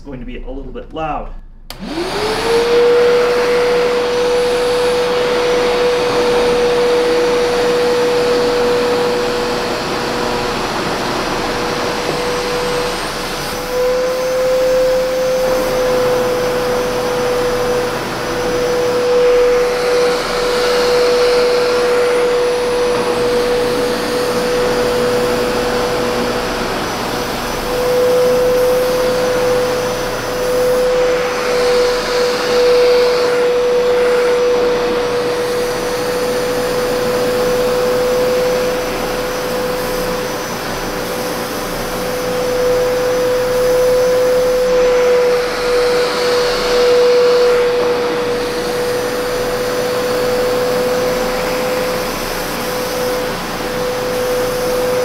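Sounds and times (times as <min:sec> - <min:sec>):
carpet cleaner suction whine: 0:01.5 - 0:55.0.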